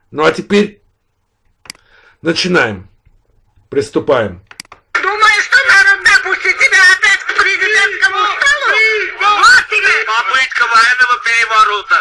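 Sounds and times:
woman talking rapidly: 0:04.9 - 0:11.9.

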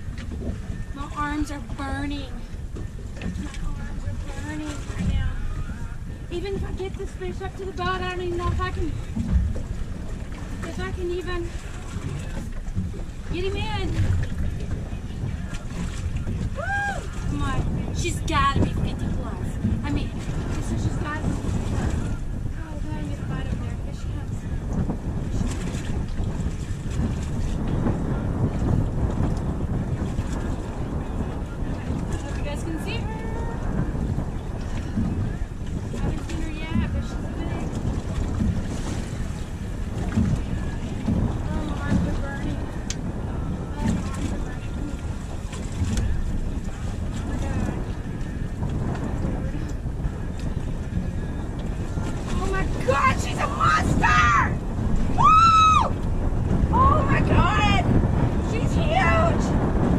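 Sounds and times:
water washing against hull: 0:00.0 - 0:59.9
wind buffeting microphone: 0:00.0 - 0:59.9.

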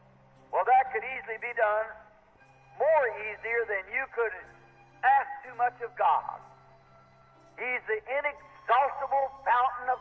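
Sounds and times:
person talking: 0:00.5 - 0:02.0, 0:02.8 - 0:06.5, 0:07.6 - 0:10.0.

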